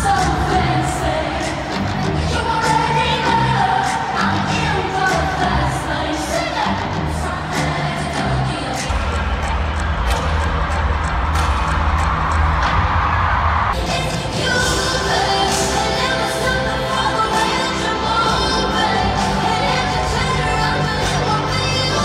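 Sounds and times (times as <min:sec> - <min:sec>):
crowd cheering: 0:00.0 - 0:22.0
live pop music with singing: 0:00.0 - 0:22.0
heavy bass: 0:06.6 - 0:22.0.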